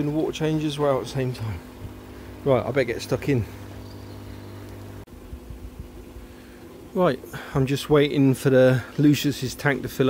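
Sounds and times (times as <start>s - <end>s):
pond vacuum humming: 0.0s - 10.0s.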